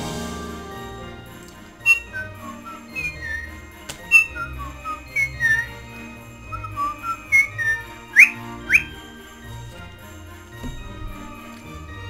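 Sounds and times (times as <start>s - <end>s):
background christmas music: 0.0s - 12.0s
woman whistling a melody: 1.8s - 5.8s, 6.5s - 9.0s.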